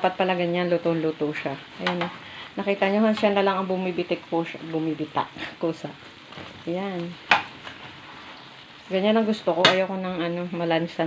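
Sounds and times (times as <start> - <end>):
hot dogs sizzling in oil: 0.0 - 11.0.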